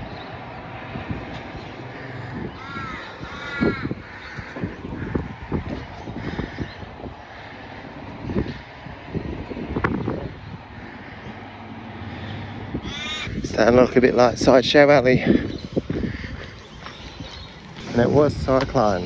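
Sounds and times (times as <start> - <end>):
wind-like rumble: 0.0 - 19.0
crow cawing: 1.8 - 8.8, 10.6 - 13.5, 15.3 - 17.1.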